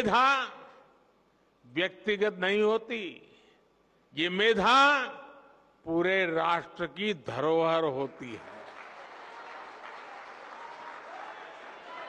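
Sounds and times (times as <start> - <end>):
audience applauding: 8.2 - 12.0.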